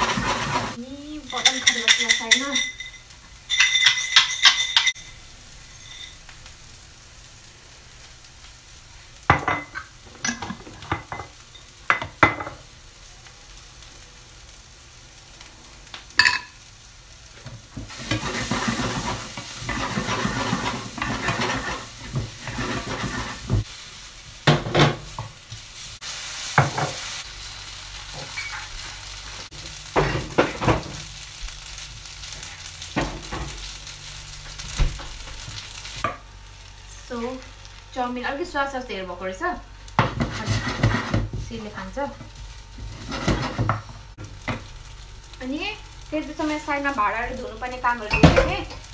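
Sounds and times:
noodles sizzling in a wok: 0.0 - 48.9.

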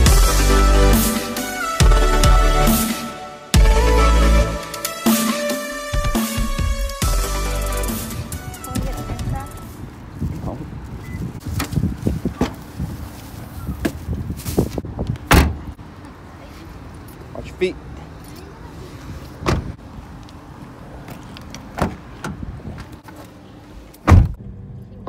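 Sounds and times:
car doors thudding shut: 15.3 - 15.7, 19.4 - 19.8, 21.7 - 22.4, 24.0 - 24.4.

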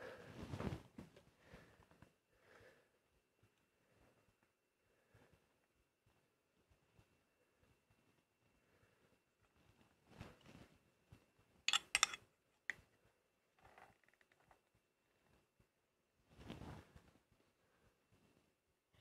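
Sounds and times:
metallic clatter of clicks: 11.7 - 12.2.

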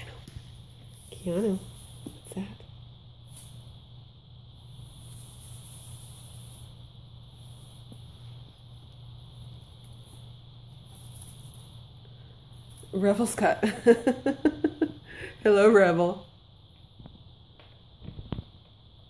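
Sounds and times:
faint steady hiss: 0.0 - 19.0
steady low hum: 0.0 - 19.0.

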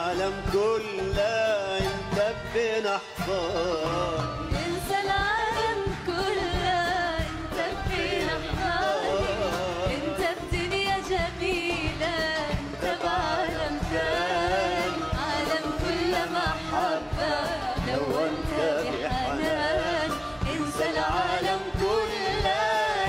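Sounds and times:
live band with drums: 0.0 - 23.0
woman singing ornamented vocal: 4.5 - 23.0.

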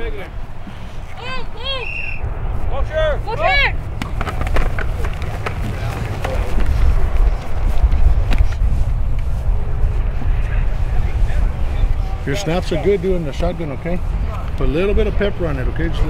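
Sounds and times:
person shouting: 1.2 - 2.0
clicks and knocks of pads: 4.0 - 6.7.

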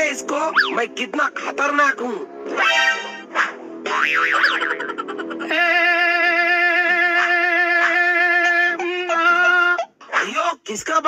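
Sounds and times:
background music: 0.0 - 10.7
springy warbling cartoon tone: 0.5 - 0.8, 2.5 - 5.5.

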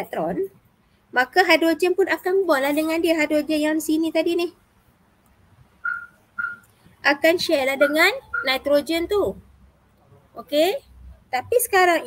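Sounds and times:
high whistle-like tones: 5.8 - 6.6, 8.2 - 8.6.

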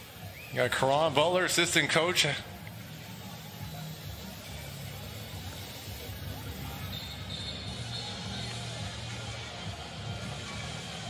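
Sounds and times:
faint music: 0.0 - 11.0
low arena sound: 0.0 - 11.0.

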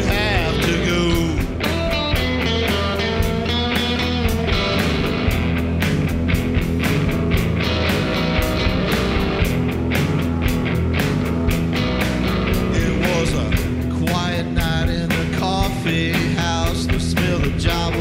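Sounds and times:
drum kit and cymbals: 0.0 - 18.0
electric bass: 0.0 - 18.0
electric guitars: 0.0 - 18.0.

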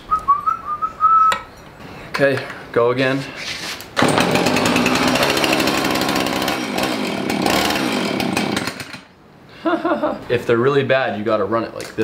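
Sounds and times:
chainsaw engine running hard: 4.0 - 9.0.

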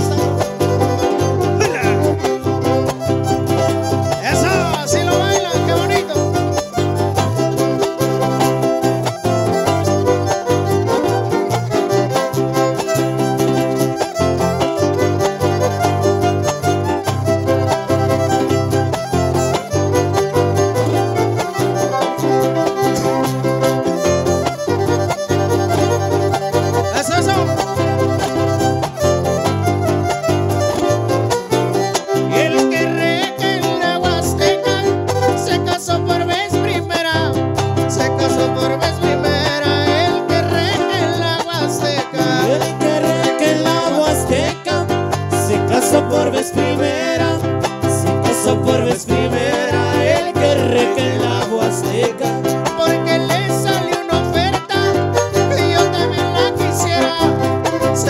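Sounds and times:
fast strumming of small guitar: 0.0 - 58.0
larger guitar: 0.0 - 58.0
violin melody: 0.0 - 58.0.

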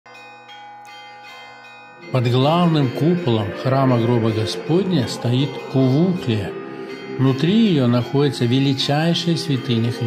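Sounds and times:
church bells ringing: 0.1 - 10.0.

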